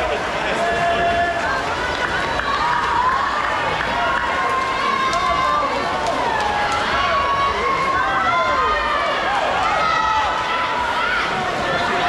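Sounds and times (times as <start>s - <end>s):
crowd yelling and cheering: 0.0s - 12.0s.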